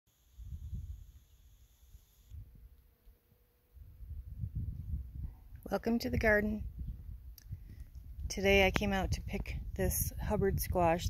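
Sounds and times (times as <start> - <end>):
wind buffeting microphone: 0.4 - 1.2, 2.3 - 2.8, 3.8 - 11.0.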